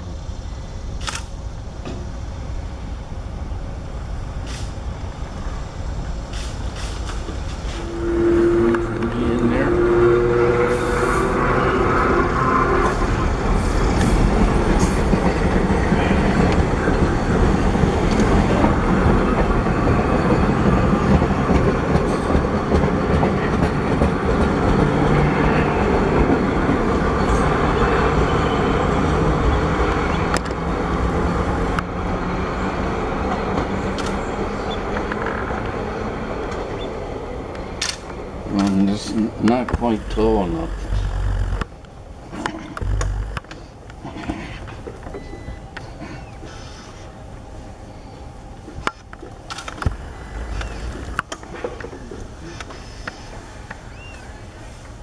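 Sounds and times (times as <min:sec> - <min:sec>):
train wheels rumbling on rails: 0:00.0 - 0:55.0
held tone: 0:07.8 - 0:12.9, 0:40.0 - 0:41.6, 0:42.8 - 0:43.4.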